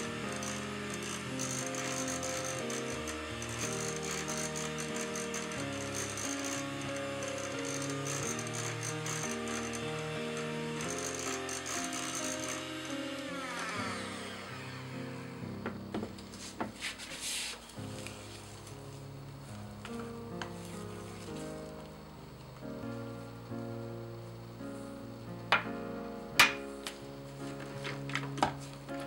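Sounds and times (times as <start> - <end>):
hand mixer beaters rattling: 0.0 - 14.5
background music held notes: 0.0 - 29.0.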